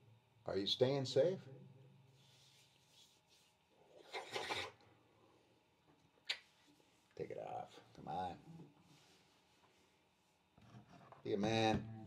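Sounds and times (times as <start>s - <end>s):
hand rubbing across face: 2.1s - 3.7s.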